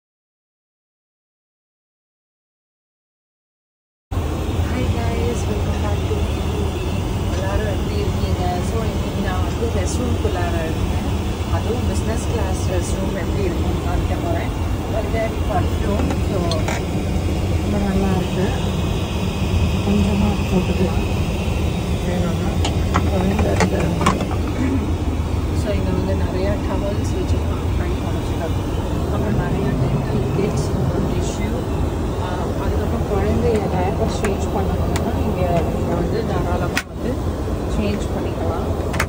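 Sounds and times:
airliner cabin rumble: 0:04.1 - 0:39.0.

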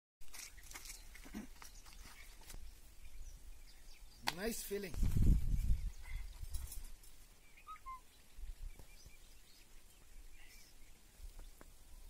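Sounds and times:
distant animal calls: 0:07.5 - 0:08.1.

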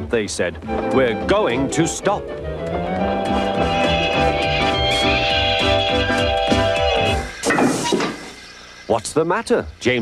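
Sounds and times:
train braking with knocks: 0:05.0 - 0:08.5.

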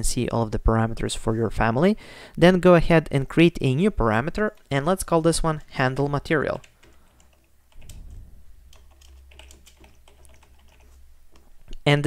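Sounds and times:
low steady hum: 0:00.0 - 0:12.0
computer keyboard typing: 0:04.1 - 0:11.6.

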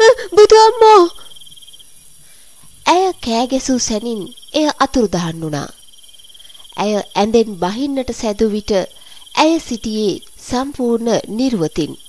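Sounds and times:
cricket chirping: 0:00.0 - 0:12.0
faint high hiss: 0:00.0 - 0:12.0.

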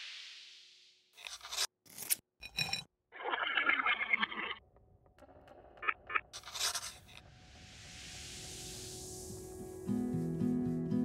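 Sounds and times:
scratchy noise bursts: 0:05.8 - 0:07.2.

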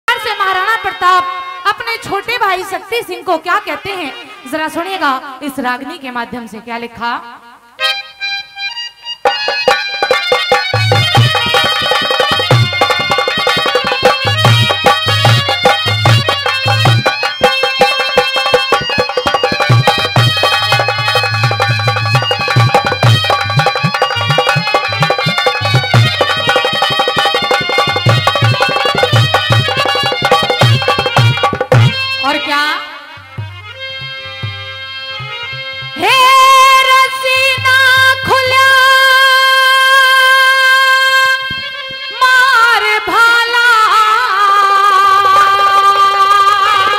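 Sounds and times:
sustained melody instrument: 0:07.8 - 0:36.0
hand drum rhythm: 0:09.2 - 0:32.4.

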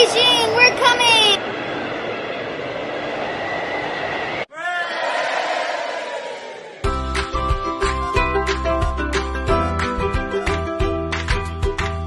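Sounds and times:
airplane roar: 0:00.0 - 0:04.5.

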